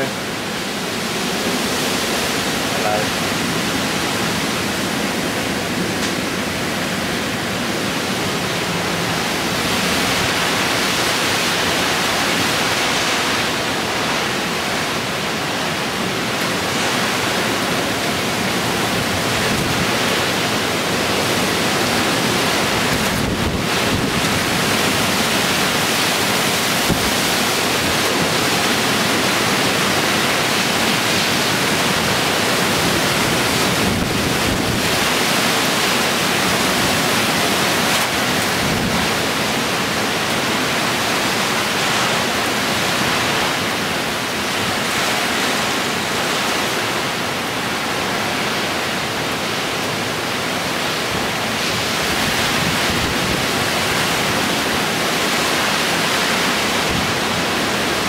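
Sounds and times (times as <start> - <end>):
heavy driving rain: 0.0 - 58.0
wind rushing through trees: 0.0 - 58.0
wind buffeting microphone: 16.6 - 40.1.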